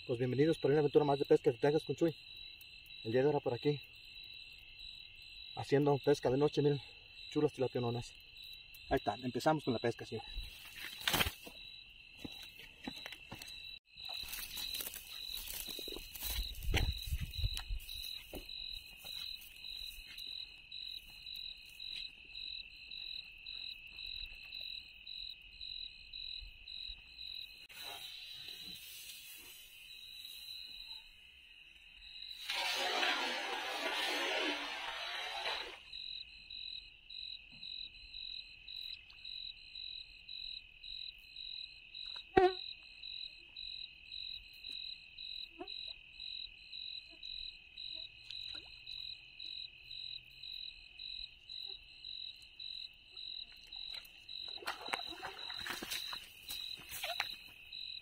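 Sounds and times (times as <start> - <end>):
crickets chirping: 0.0 - 58.0.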